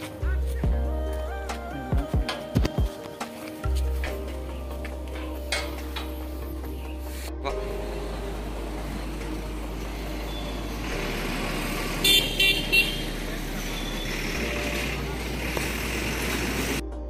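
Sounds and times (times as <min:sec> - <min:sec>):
road traffic noise: 0:00.0 - 0:17.0
vehicle horn honks: 0:11.9 - 0:14.4.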